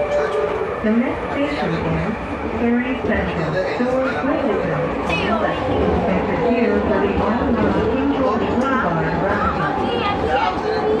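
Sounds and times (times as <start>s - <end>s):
people talking: 0.0s - 11.0s
train rumbling: 0.0s - 11.0s.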